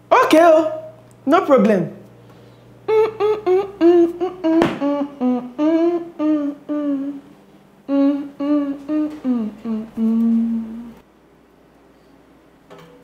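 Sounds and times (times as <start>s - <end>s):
person humming a tune: 2.8s - 11.0s.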